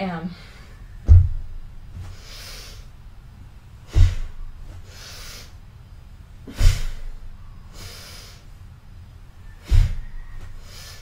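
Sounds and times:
forceful breath through nose: 0:02.0 - 0:02.9, 0:03.9 - 0:05.6, 0:06.5 - 0:08.6, 0:09.6 - 0:11.0.

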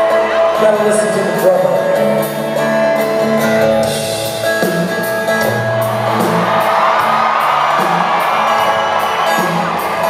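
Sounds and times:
acoustic guitars strumming: 0:00.0 - 0:10.0
drums and cymbals: 0:03.8 - 0:10.0.

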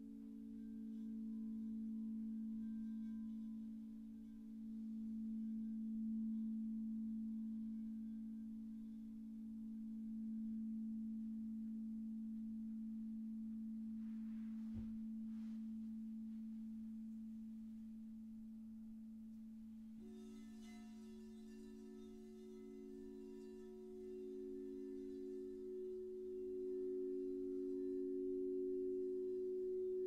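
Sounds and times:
higher bowl tone: 0:00.0 - 0:30.0
singing bowls ringing: 0:00.0 - 0:30.0
soft knock: 0:14.6 - 0:15.1.

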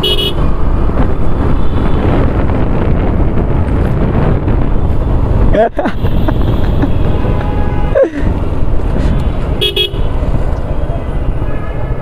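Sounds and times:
motorcycle engine and road noise: 0:00.0 - 0:12.0
wind rushing over microphone: 0:00.0 - 0:12.0
person laughing: 0:05.5 - 0:07.2, 0:07.9 - 0:08.4.

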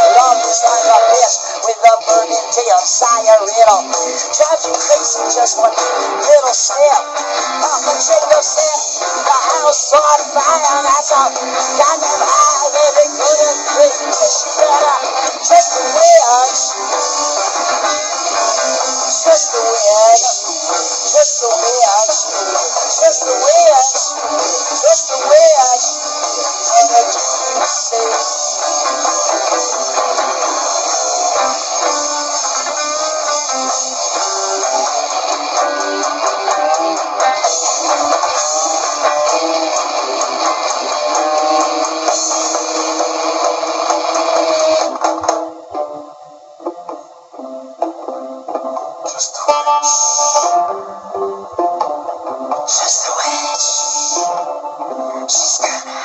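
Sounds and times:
instrumental noise-rock: 0:00.0 - 0:56.0.

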